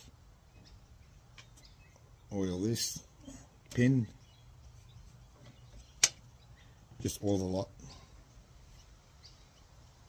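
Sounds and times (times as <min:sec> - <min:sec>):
sharp click: 0:06.0 - 0:06.2.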